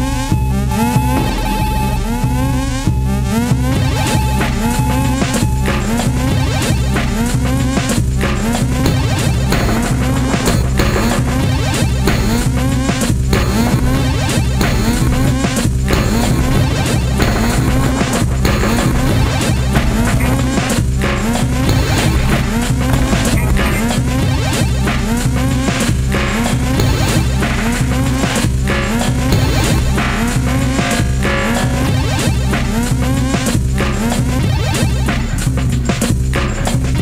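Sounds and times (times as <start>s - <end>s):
deep bass: 0.0s - 37.0s
experimental instrumental beat: 0.0s - 37.0s
sharp drum hits: 15.9s - 25.1s.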